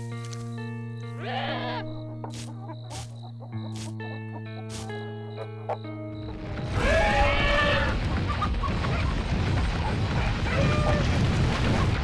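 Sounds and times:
background music: 0.0 - 10.8.

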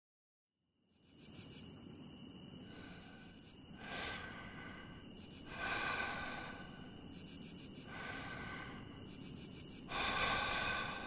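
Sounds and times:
crickets trilling: 0.8 - 11.0.

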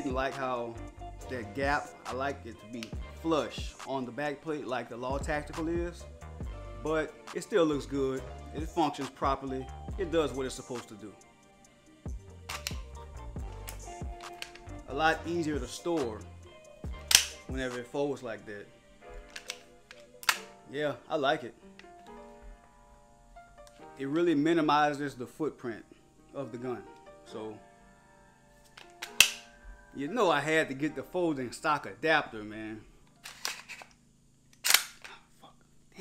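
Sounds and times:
background music: 0.0 - 34.8
sharp clicks of folding gun brace: 13.6 - 14.7, 17.1 - 17.4, 19.2 - 20.5, 28.8 - 29.4, 33.2 - 35.2.

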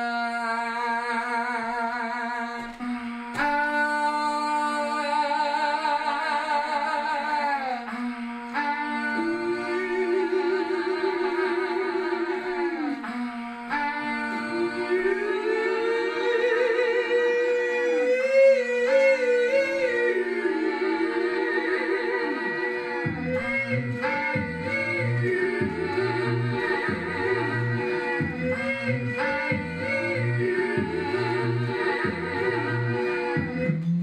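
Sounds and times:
hummed voice layers: 0.0 - 34.0
lead voice singing sliding notes: 0.0 - 34.0.

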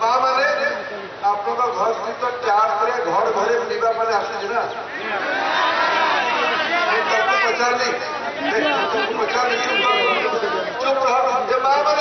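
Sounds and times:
man speaking into microphone: 0.0 - 4.9, 6.6 - 12.0.

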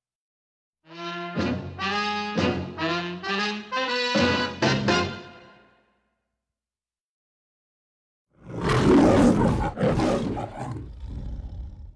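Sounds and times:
lion roaring: 8.4 - 11.9.

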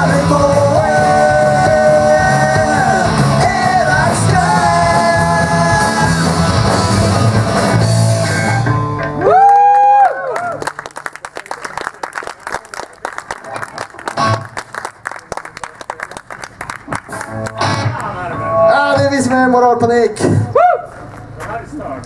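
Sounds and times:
rock band playing live: 0.0 - 9.6, 14.1 - 14.6, 16.9 - 18.8
audience applauding: 9.3 - 18.1.

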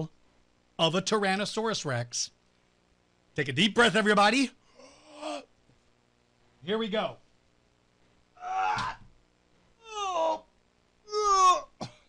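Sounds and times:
man groaning with effort: 4.8 - 5.5, 8.4 - 9.0, 9.8 - 10.4, 11.1 - 11.9.

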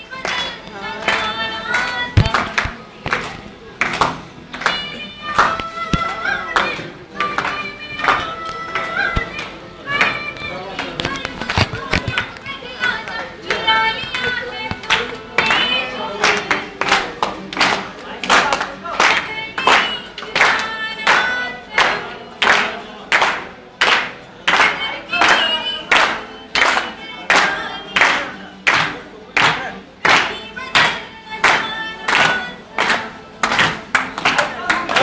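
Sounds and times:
group singing: 0.0 - 35.0
hand claps: 0.0 - 35.0
strummed acoustic guitar: 0.0 - 35.0.

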